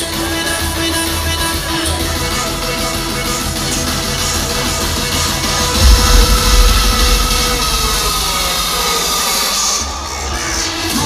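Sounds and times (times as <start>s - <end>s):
amplified concert music with bass: 0.0s - 11.0s
crowd cheering and shouting: 0.0s - 11.0s.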